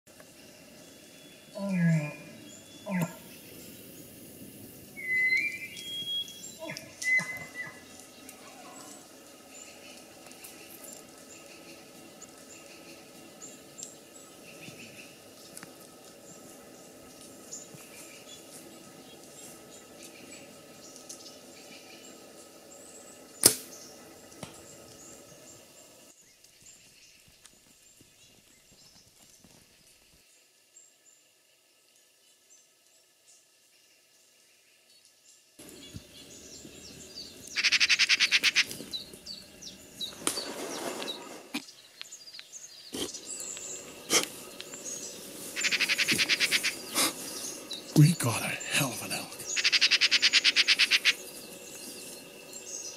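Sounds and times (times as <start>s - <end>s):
magpies chattering: 4.9s - 15.2s, 35.6s - 40.2s, 42.8s - 52.9s.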